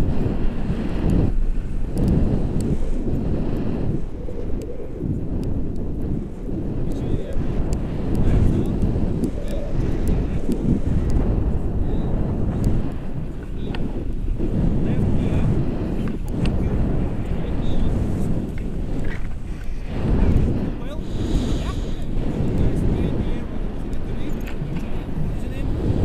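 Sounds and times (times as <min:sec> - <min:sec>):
faint clicks: 0:00.0 - 0:16.8, 0:17.7 - 0:20.0, 0:20.8 - 0:25.8
wind buffeting microphone: 0:00.0 - 0:26.0.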